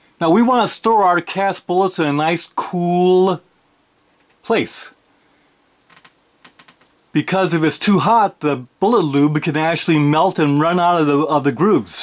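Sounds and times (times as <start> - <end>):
faint clicks: 4.2 - 4.4, 5.8 - 7.0.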